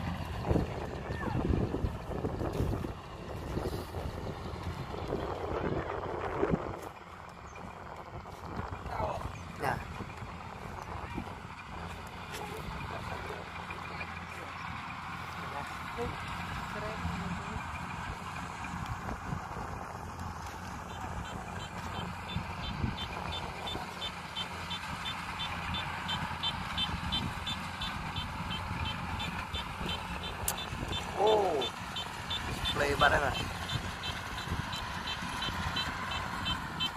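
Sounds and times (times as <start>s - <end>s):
diesel engine running: 0.0s - 36.9s.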